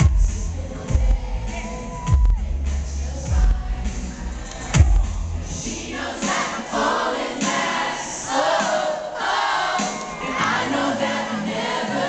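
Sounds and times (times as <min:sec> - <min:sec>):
loud crowd noise: 0:00.0 - 0:12.0
pop backing music: 0:00.0 - 0:12.0.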